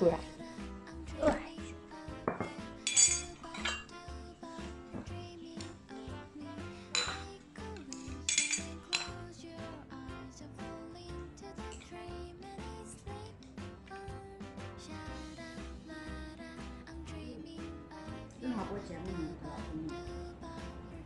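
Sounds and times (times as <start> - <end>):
background music: 0.0 - 21.0
metal tableware clinking: 2.3 - 3.9, 6.9 - 9.2.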